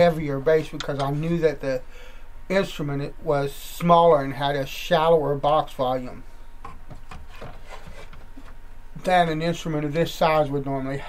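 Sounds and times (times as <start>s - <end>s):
steady low hum: 0.0s - 11.0s
hands rubbing wood: 7.0s - 8.6s.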